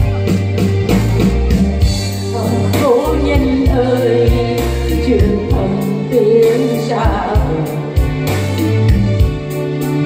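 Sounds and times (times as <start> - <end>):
electronic keyboard chords: 0.0 - 10.0
steady drum beat: 0.0 - 10.0
woman singing into a microphone: 2.2 - 8.2.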